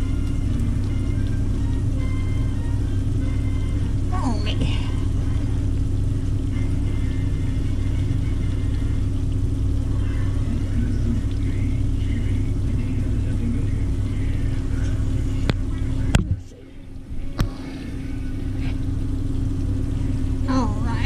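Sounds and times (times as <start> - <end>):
steady low hum: 0.0 - 21.0
faint tv voices: 9.7 - 18.9.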